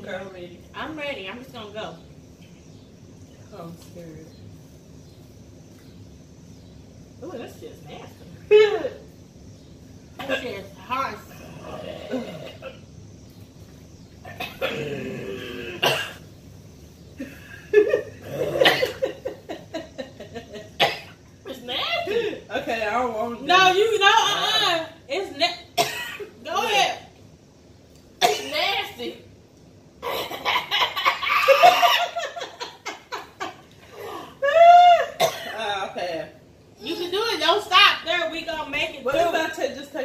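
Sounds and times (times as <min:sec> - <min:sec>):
woman coughing: 0:10.2 - 0:10.6, 0:14.3 - 0:16.2, 0:18.2 - 0:19.2, 0:20.8 - 0:21.2, 0:25.8 - 0:26.3, 0:28.2 - 0:28.6, 0:35.2 - 0:35.7
women laughing: 0:17.2 - 0:20.8, 0:30.0 - 0:35.2
long high cry: 0:34.0 - 0:35.2.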